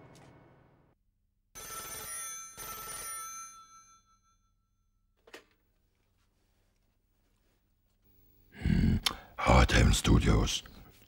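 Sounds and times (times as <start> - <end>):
telephone bell ringing: 1.6 - 5.0.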